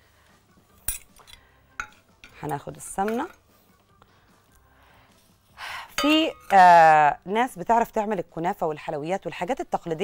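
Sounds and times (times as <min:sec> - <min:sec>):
metal ladle clinking on pot: 0:00.9 - 0:03.4, 0:05.9 - 0:06.7.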